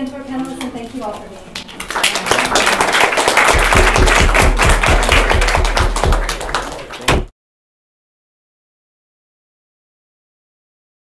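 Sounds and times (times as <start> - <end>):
audience applauding: 1.6 - 7.3.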